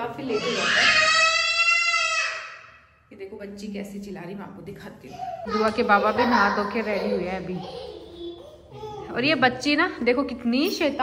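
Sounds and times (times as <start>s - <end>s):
girl shrieking: 0.3s - 2.6s.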